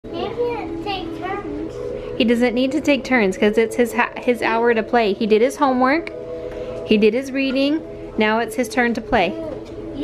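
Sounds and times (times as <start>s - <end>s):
young child's high-pitched voice: 0.1s - 1.8s, 9.3s - 10.0s.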